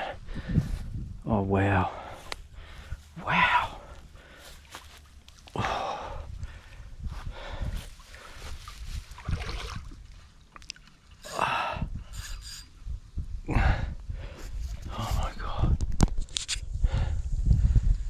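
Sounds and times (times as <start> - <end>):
man gasping and breathing heavily: 0.0 - 0.9, 1.6 - 8.6, 11.2 - 12.2, 13.4 - 15.8, 16.7 - 18.0.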